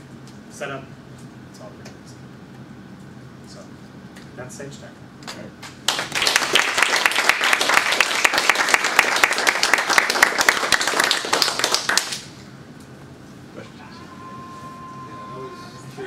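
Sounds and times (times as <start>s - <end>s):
audience applauding: 5.9s - 12.3s.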